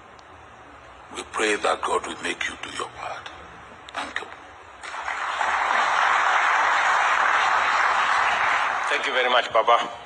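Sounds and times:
audience applauding: 4.8s - 9.3s.

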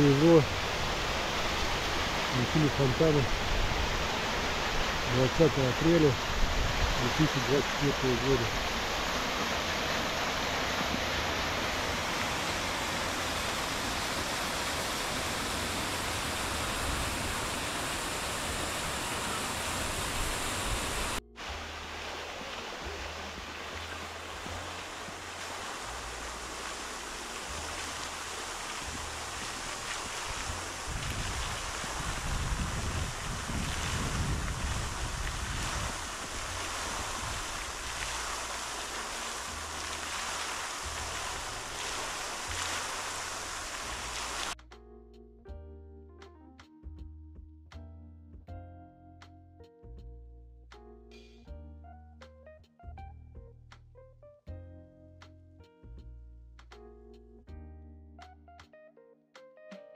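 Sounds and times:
fountain water splashing: 0.0s - 44.6s
wind buffeting microphone: 28.8s - 38.0s.

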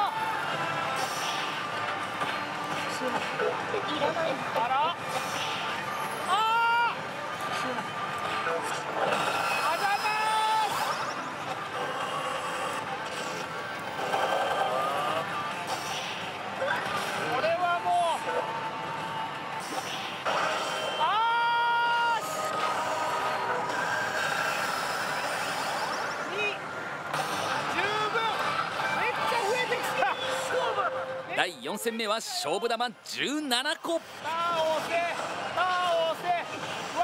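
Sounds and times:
gaming hall din: 0.0s - 37.0s.

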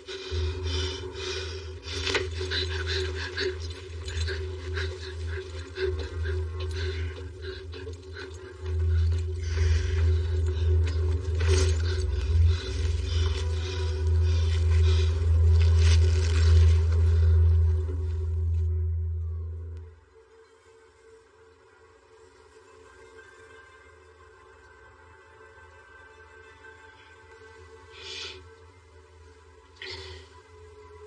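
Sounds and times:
dark low musical drone: 0.0s - 31.0s.

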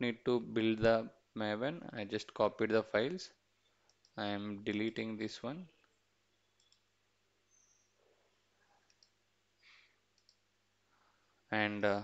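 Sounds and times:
computer mouse clicks: 3.9s - 4.2s, 6.5s - 6.9s, 8.8s - 10.5s.

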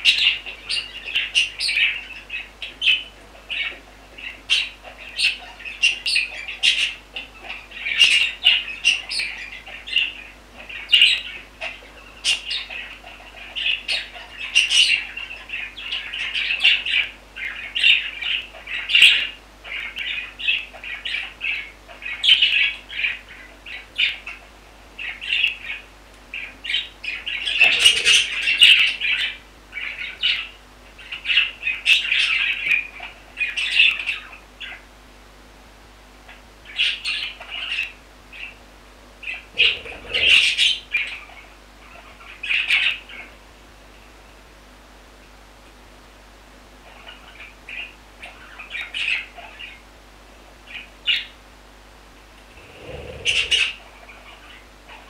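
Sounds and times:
budgerigars chirping and chattering: 0.0s - 34.8s, 36.7s - 38.6s, 39.2s - 43.3s, 52.6s - 54.6s.

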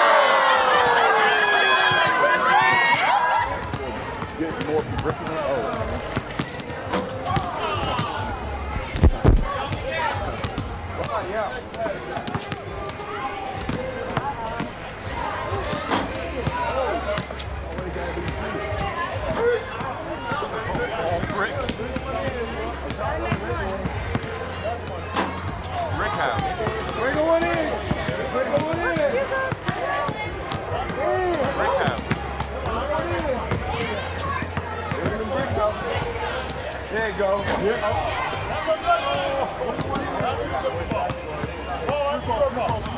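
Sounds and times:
people's voices: 0.0s - 42.9s
basketball bouncing on a court: 1.9s - 8.4s, 9.1s - 14.8s, 15.5s - 24.3s, 25.0s - 36.6s, 39.0s - 42.9s.

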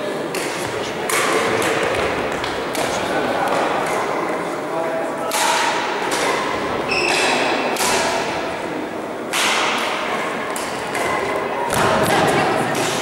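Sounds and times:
rackets hitting shuttlecock: 0.2s - 4.2s, 5.3s - 8.5s, 9.3s - 13.0s
shoe squeak on floor: 6.9s - 7.4s.

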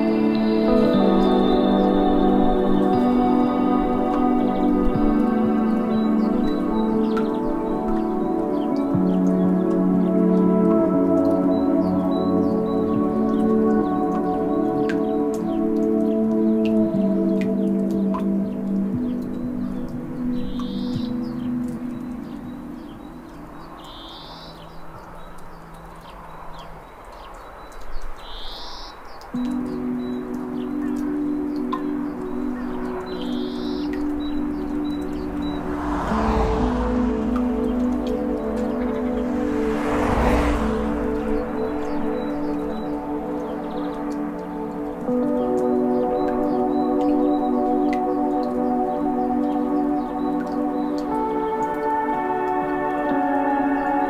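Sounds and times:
ambient ringing chords: 0.0s - 26.7s, 29.3s - 54.0s
rushing swells of noise: 32.4s - 43.8s.

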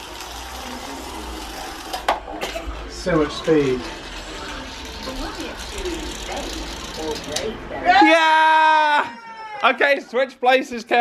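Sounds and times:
faint voices murmuring: 0.0s - 8.0s
person shouting: 7.9s - 9.7s.

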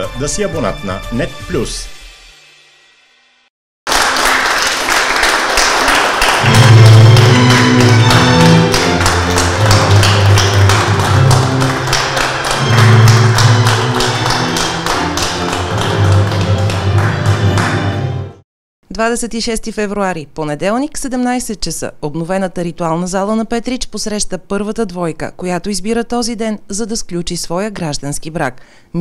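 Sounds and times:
sharp percussive taps: 6.5s - 17.6s.

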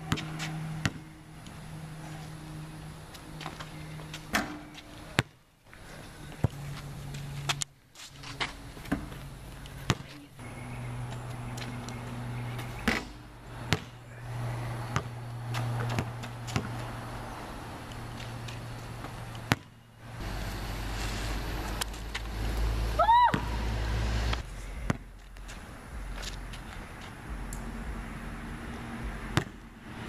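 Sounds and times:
basketball hitting backboard and rim: 0.0s - 1.2s, 4.3s - 5.4s, 8.4s - 9.2s, 9.8s - 10.1s, 12.5s - 14.0s, 14.8s - 16.9s, 19.0s - 19.8s, 24.8s - 25.1s, 29.1s - 29.7s
steady low hum: 0.0s - 30.0s.

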